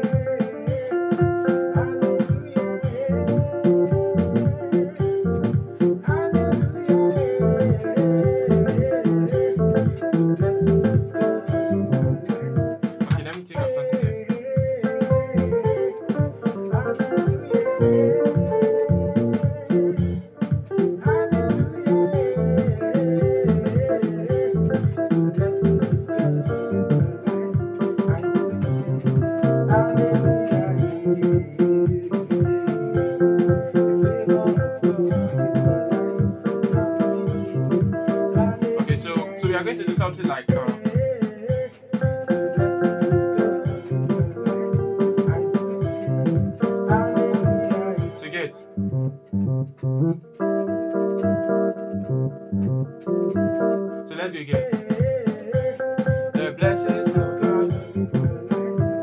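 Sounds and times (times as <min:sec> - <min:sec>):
electronic keyboard groove: 0:00.0 - 0:59.0
pulsing bass line: 0:03.0 - 0:13.3, 0:15.1 - 0:40.2, 0:42.6 - 0:48.0, 0:48.6 - 0:53.7, 0:56.6 - 0:59.0.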